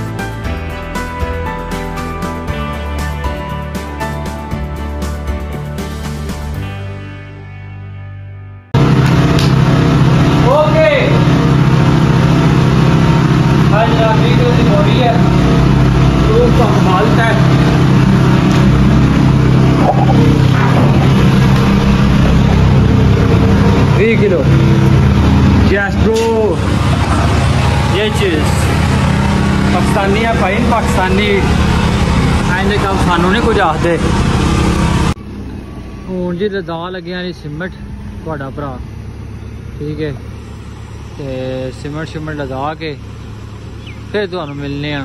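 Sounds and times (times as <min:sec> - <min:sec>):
diesel engine running: 0:08.8 - 0:45.0.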